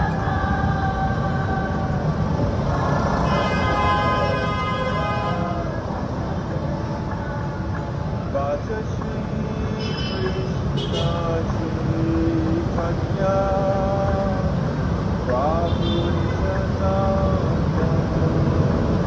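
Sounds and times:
traffic on a wet road: 0.0s - 19.0s
vehicle horn: 3.2s - 5.6s, 9.8s - 11.3s, 15.7s - 16.4s.

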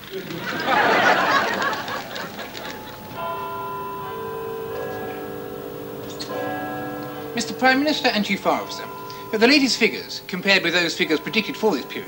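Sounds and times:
large bell chiming: 0.6s - 12.0s.

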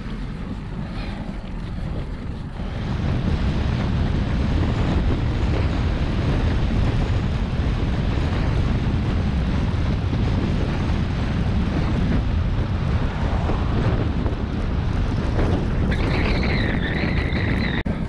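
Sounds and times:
wind rushing over microphone: 0.0s - 18.0s.

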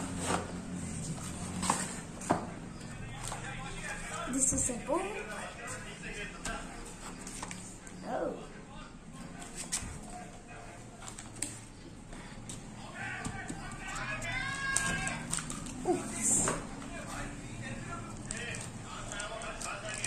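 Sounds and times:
cardboard and paper rustling: 0.0s - 2.3s, 6.8s - 7.8s
faint voice: 8.0s - 11.0s.

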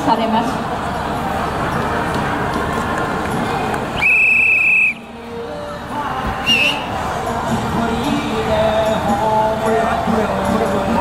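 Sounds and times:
crowd and street noise: 0.0s - 11.0s
whistle blast: 4.0s - 5.0s, 6.4s - 6.9s.

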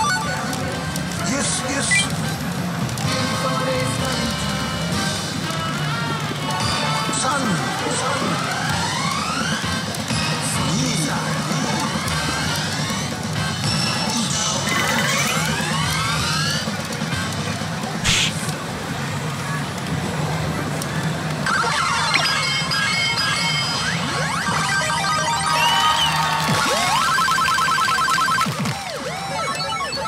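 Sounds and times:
sharp hit: 18.0s - 18.4s
electronic music: 18.0s - 18.5s, 21.4s - 30.0s.

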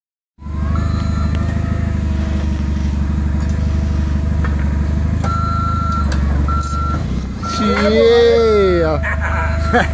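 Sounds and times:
reversing beeper: 0.4s - 2.5s, 5.2s - 9.9s
forklift engine running: 0.4s - 9.9s.

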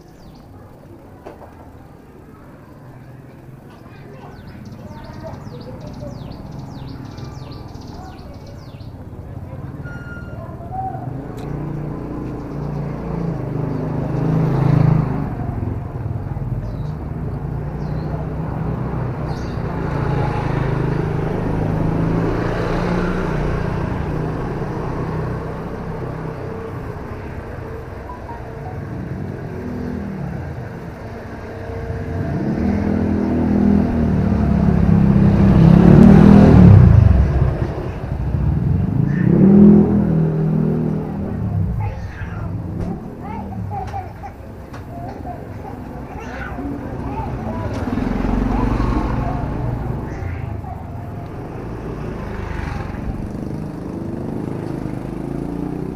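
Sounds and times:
small motorcycle engines passing: 0.0s - 55.9s.

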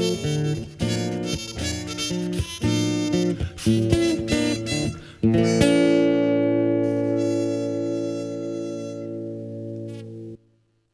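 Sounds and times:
guitar and harmonica chord: 0.0s - 10.4s.

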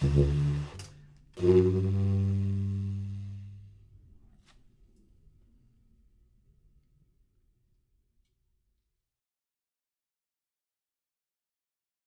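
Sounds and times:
baritone saxophone low note: 0.0s - 3.8s.

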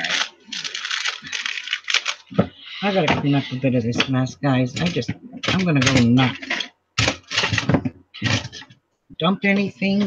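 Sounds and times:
plastic bag crinkling: 0.0s - 2.3s.

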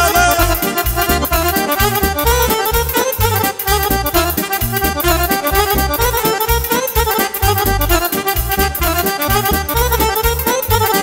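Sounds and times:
accordion melody: 0.0s - 11.0s
keyboard bass: 0.0s - 11.0s
steady dance beat: 0.0s - 11.0s.

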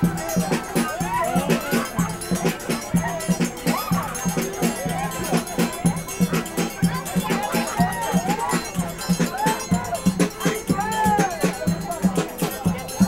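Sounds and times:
voices: 0.0s - 13.0s.

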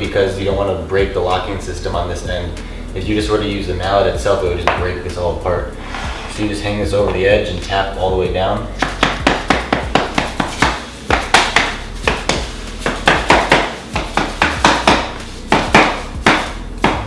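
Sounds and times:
rubber mallet tapping: 8.8s - 17.0s.

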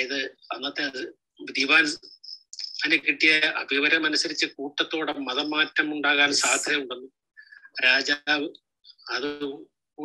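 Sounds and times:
man speaking: 0.0s - 9.7s.

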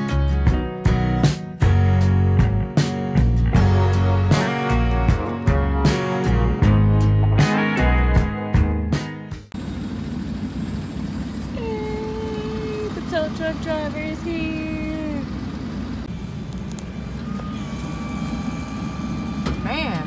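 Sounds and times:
guitar music: 0.0s - 9.5s
vehicle engine idling: 9.5s - 20.0s.

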